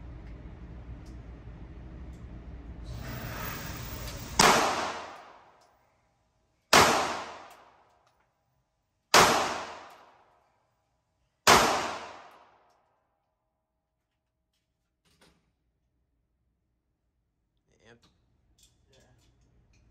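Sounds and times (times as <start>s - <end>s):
low steady hum: 0.0s - 7.2s
pistol shots echoing: 4.4s - 5.3s, 6.7s - 7.5s, 9.1s - 10.0s, 11.5s - 12.5s.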